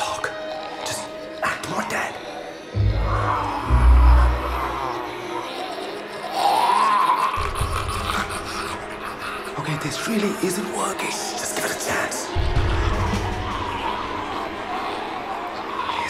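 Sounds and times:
men moaning like zombies: 0.0 - 10.5, 12.2 - 16.0
horror film score: 0.0 - 16.0
deep bass swells: 2.8 - 5.2.

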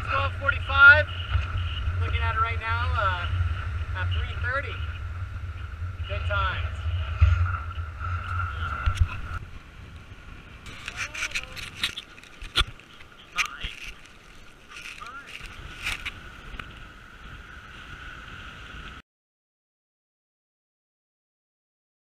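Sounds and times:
wind on microphone: 0.0 - 19.0.

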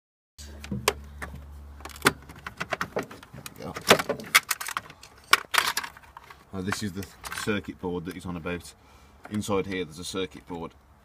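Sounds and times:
plastic clicks and knocks: 0.6 - 7.4.

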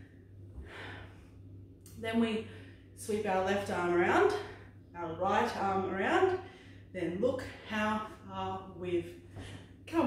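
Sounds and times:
woman breathing: 0.0 - 1.5, 2.4 - 3.0, 6.4 - 7.0
low steady hum: 0.0 - 10.0.

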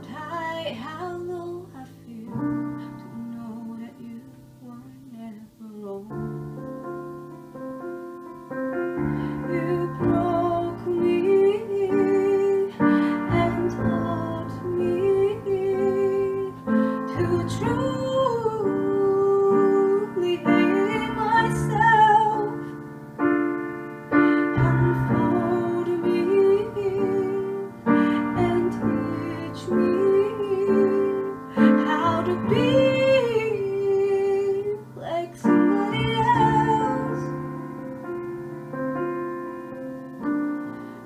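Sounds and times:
woman singing: 0.0 - 6.6, 9.0 - 22.8, 24.1 - 37.4
digital piano chords: 0.0 - 41.0.

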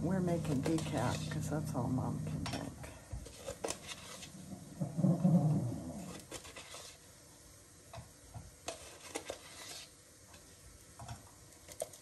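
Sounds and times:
soft rustle: 2.8 - 4.6, 5.2 - 7.1.

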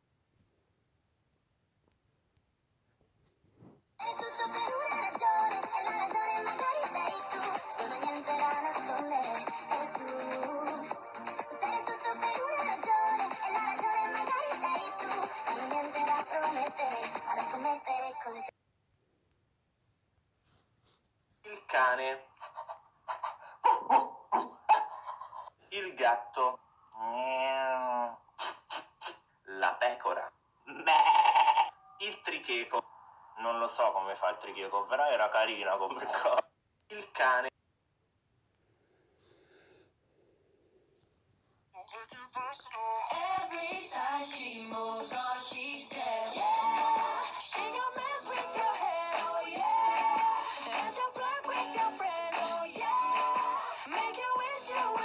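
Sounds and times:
song with sung melody: 4.0 - 18.5, 41.9 - 55.0
person imitating walrus barks: 30.7 - 32.2.

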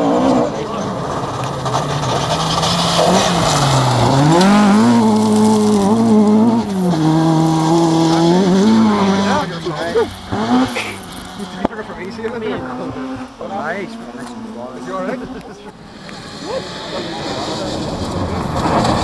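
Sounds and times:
rally car engine at full throttle: 0.0 - 19.0.

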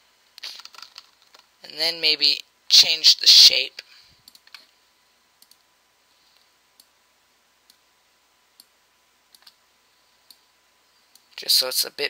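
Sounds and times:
computer mouse clicks: 4.2 - 4.7, 5.4 - 5.6, 9.3 - 9.6.

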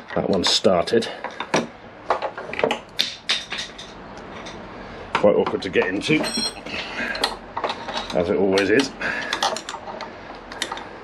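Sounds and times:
small metal clinks: 6.2 - 6.6.

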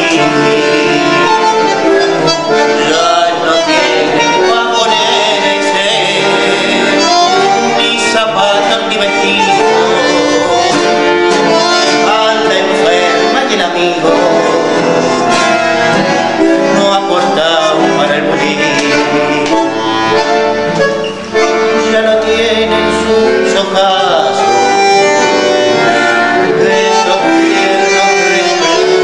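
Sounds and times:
bandoneon playing chords: 0.0 - 29.0
man singing a tango: 0.0 - 29.0.

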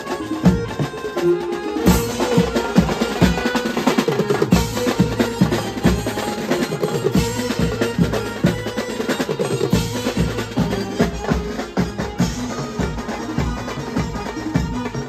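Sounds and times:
cymbals: 0.0 - 15.0
held melody line: 0.0 - 15.0
snare drums fast beat: 1.8 - 15.0.

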